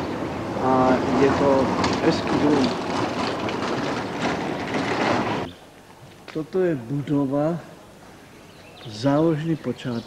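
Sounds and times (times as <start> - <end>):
steady outdoor rushing noise: 0.0 - 5.5.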